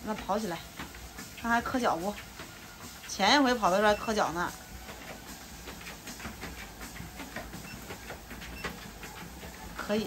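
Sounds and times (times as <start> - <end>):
dog paws on treadmill belt: 0.0 - 10.0
treadmill humming: 0.0 - 10.0.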